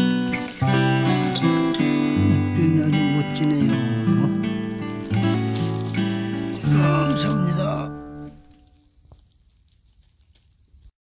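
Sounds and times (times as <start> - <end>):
insects chirring: 0.0 - 10.9.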